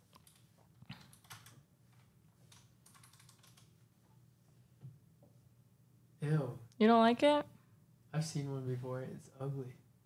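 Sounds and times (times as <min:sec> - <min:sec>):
typing on computer keyboard: 0:00.1 - 0:01.6, 0:02.4 - 0:03.8.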